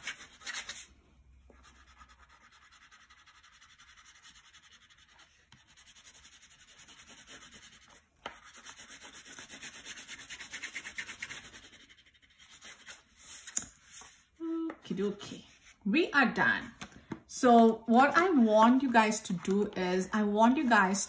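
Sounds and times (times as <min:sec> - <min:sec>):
crayon scribbling on paper: 0:01.6 - 0:14.1.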